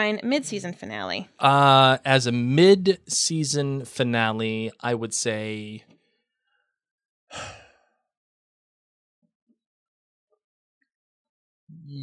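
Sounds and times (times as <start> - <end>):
person speaking: 0.0 - 5.8
person sighing: 1.4 - 3.0, 7.3 - 7.8.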